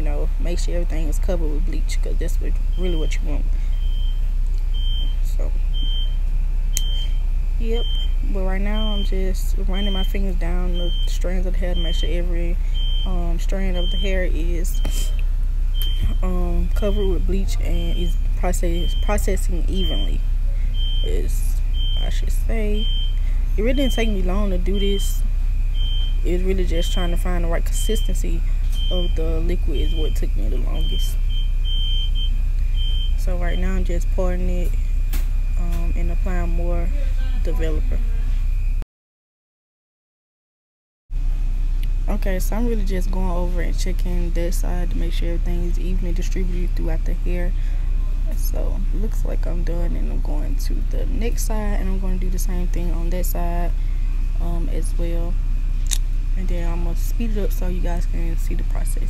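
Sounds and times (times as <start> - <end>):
constant low hum: 0.0 - 38.8, 41.2 - 59.0
high electronic beep: 15.8 - 16.2.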